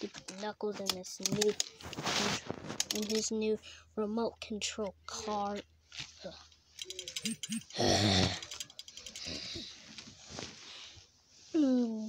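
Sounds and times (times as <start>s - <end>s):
rustling of plush toys: 0.0s - 3.6s, 5.1s - 8.4s, 9.1s - 12.0s
short vocal blips: 7.1s - 8.5s
boy groaning: 7.2s - 8.6s.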